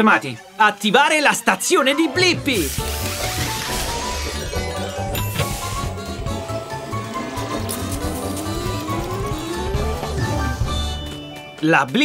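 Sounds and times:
upbeat cartoon music: 0.0 - 12.0
rising tone: 3.2 - 11.4.

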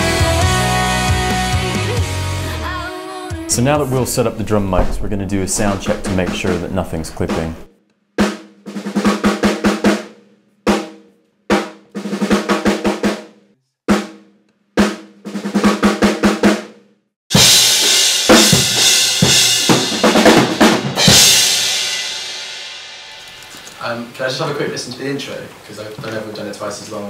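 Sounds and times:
full drum kit with cymbals: 0.0 - 2.6, 4.7 - 24.6.

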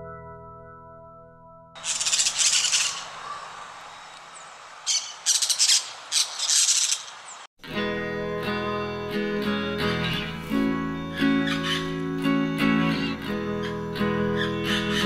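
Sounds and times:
parakeets screeching: 1.8 - 7.5, 11.2 - 11.9, 13.0 - 15.0
acoustic guitar tune: 7.6 - 15.0.

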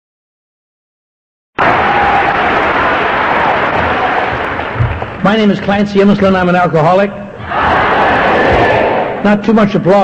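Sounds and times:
large audience applauding: 1.6 - 6.5.

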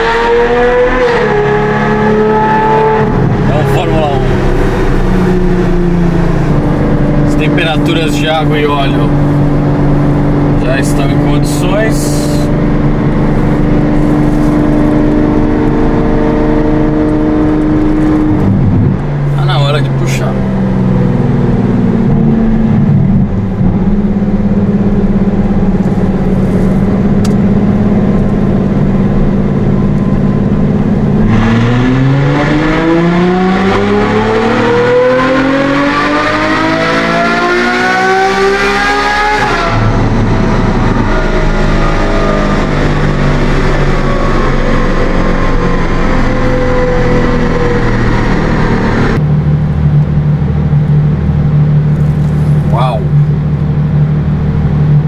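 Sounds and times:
car engine revving on dynamometer: 0.0 - 49.2.

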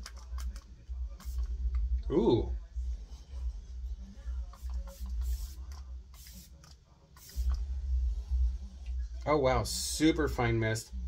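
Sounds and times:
spray bottle misting hisses: 1.2 - 1.5, 4.5 - 7.6
low rumble: 7.6 - 9.8.

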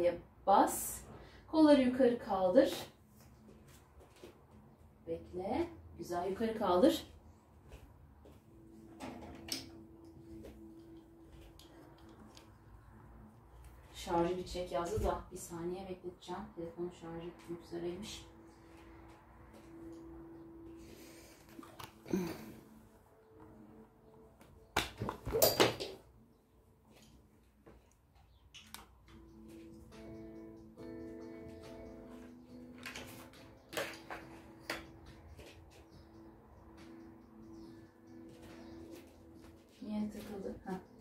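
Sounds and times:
soft background music: 0.0 - 41.0.

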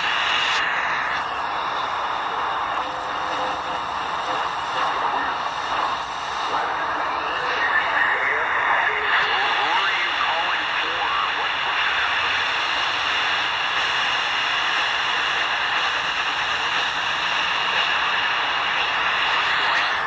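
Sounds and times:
faint voice over radio: 0.0 - 20.0
shortwave hiss and static: 0.0 - 20.0.

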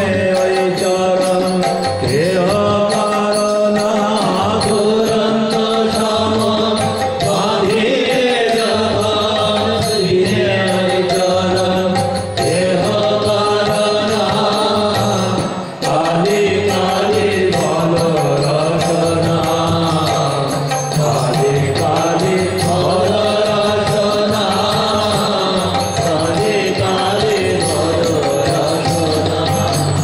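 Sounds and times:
harmonium drone: 0.0 - 30.0
violin: 0.0 - 30.0.

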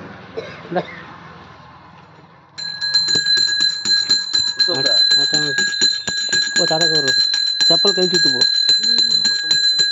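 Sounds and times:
hand bell ringing rapidly: 2.6 - 9.9.

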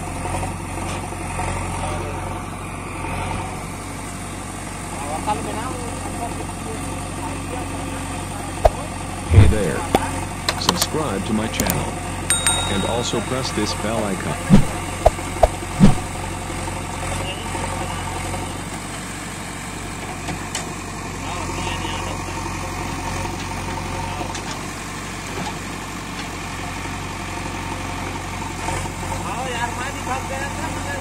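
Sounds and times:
diesel engine running: 0.0 - 31.0.

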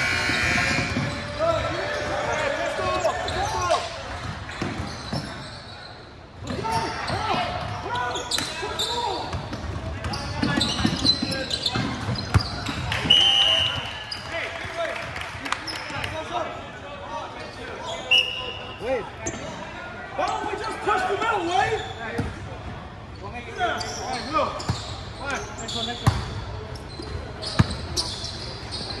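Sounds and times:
sneakers squeaking: 0.0 - 14.4, 17.4 - 29.0
referee whistle blasts: 13.0 - 14.0, 18.1 - 18.7.

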